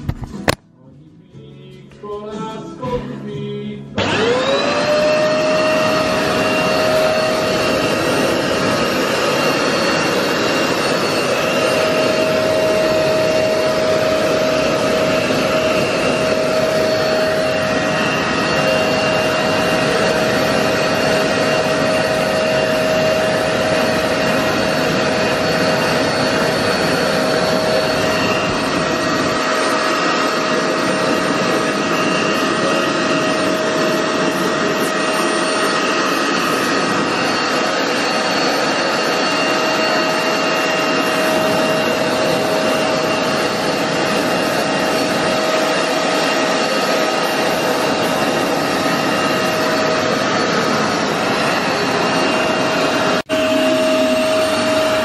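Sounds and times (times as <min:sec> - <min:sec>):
carpet washer motor whining: 0:04.0 - 0:55.0.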